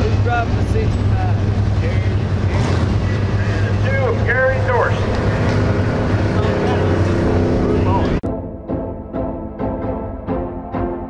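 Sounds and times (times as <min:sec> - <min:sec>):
race car engines running: 0:00.0 - 0:08.2.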